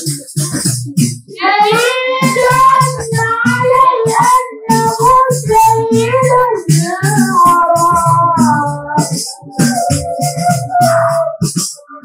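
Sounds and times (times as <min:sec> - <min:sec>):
drum beating: 0:00.0 - 0:12.0
jingling percussion: 0:02.3 - 0:11.9.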